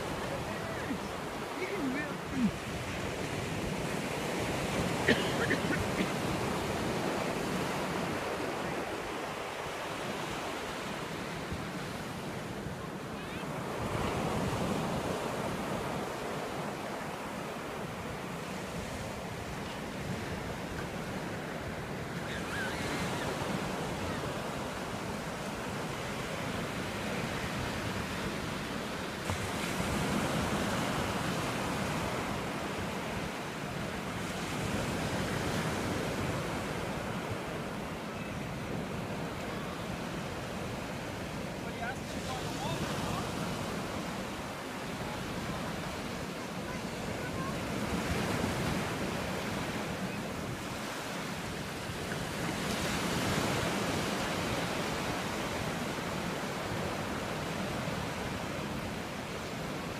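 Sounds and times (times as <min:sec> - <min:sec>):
waves breaking on beach: 0:00.0 - 0:59.9.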